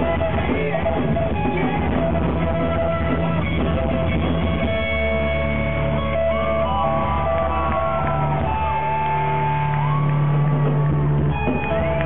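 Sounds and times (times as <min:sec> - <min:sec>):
drums: 0:00.0 - 0:12.0
electric guitars ringing: 0:00.0 - 0:12.0.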